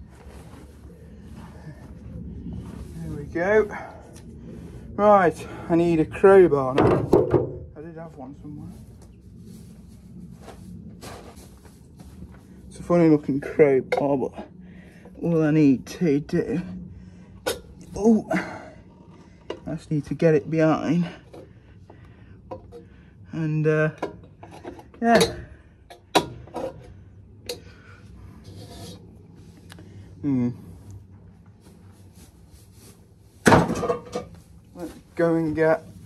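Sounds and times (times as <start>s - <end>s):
faint footsteps: 0.0s - 4.7s, 8.6s - 12.9s, 30.6s - 33.4s
steady low rumble: 0.0s - 36.0s
crowbar clanking on metal: 24.4s - 26.8s
metal scraping on metal: 28.3s - 29.2s.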